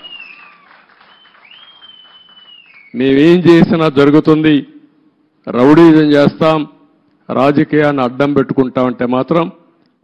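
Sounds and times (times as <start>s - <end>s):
thin high whistle: 0.0s - 3.0s
faint background hiss: 0.0s - 10.0s.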